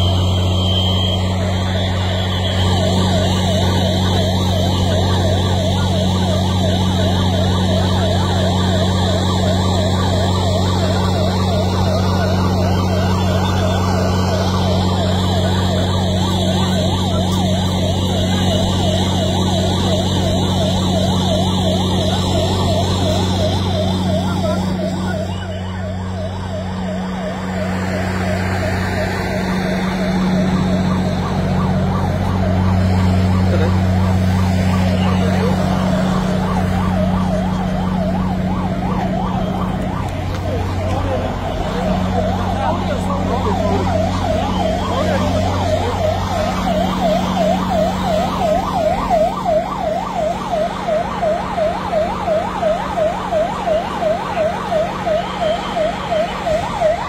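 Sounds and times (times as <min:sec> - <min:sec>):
emergency siren yelping: 0:00.0 - 0:57.0.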